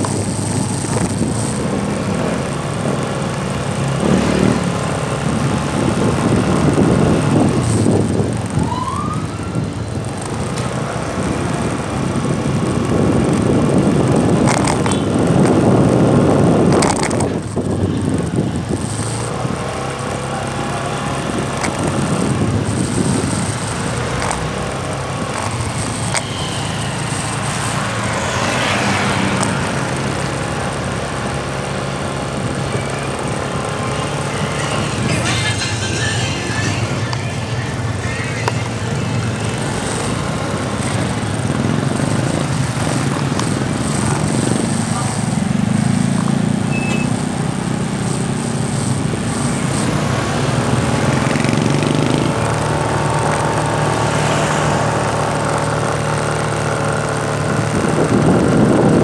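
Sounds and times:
motorcycle engine running: 0.0s - 59.0s
wind rushing over microphone: 0.0s - 59.0s.

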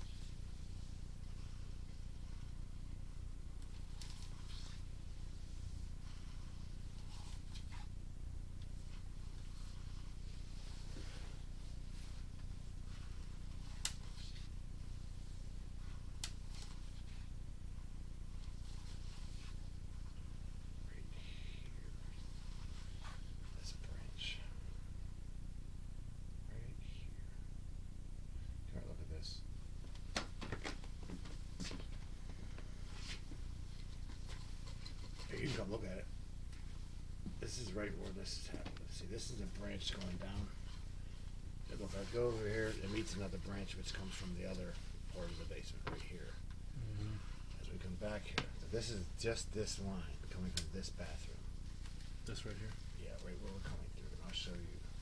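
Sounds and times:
faint handling rustles: 0.0s - 24.9s, 28.3s - 55.0s
low electrical hum: 0.0s - 55.0s.

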